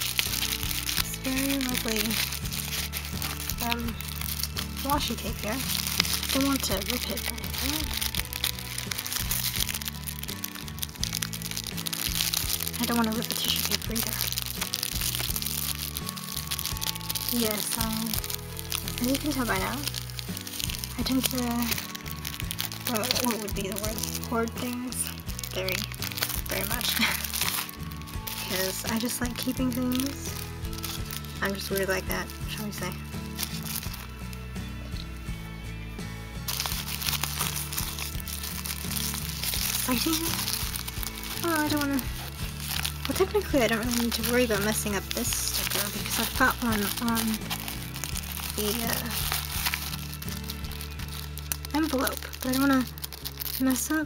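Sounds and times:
tissue paper crinkling: 0.0s - 35.5s, 36.4s - 54.0s
background music with held chords: 0.0s - 54.0s.

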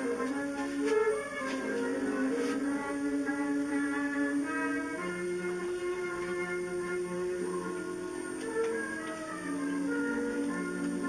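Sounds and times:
concert wind band playing: 0.0s - 11.0s.

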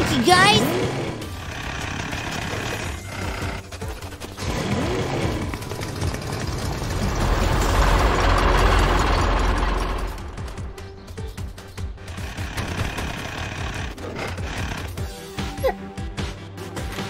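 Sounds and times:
cartoon vehicle driving off: 0.0s - 11.3s, 12.0s - 15.1s
background music: 0.0s - 17.0s
plane flying past: 4.6s - 10.9s
rushing noise and low rumble: 5.4s - 11.3s.

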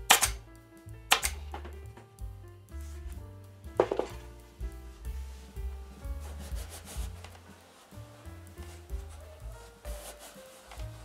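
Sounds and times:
background music: 0.0s - 11.0s
hands rubbing vinyl: 2.7s - 11.0s
quick brushing strokes: 5.0s - 11.0s.

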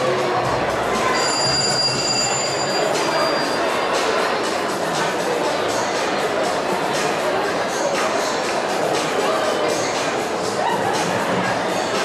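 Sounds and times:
noisy background: 0.0s - 12.0s
high-pitched ringing tone: 1.1s - 3.7s.

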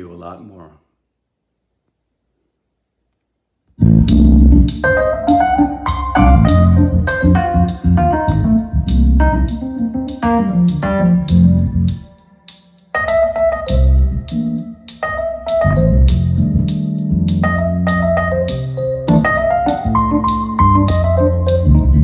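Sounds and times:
funk jazz bass and keyboards: 3.8s - 22.0s.

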